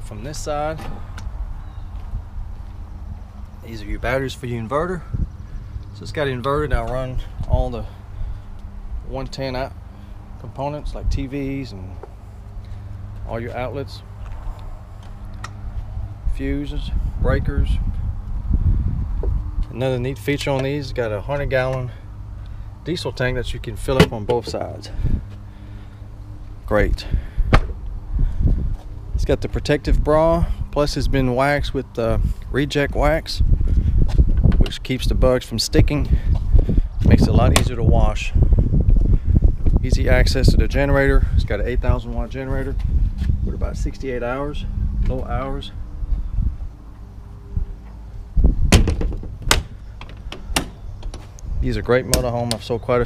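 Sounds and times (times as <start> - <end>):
low rumble: 36.1 - 51.9
sharp knocks: 48.7 - 51.2
door shutting with thud: 48.7 - 51.3.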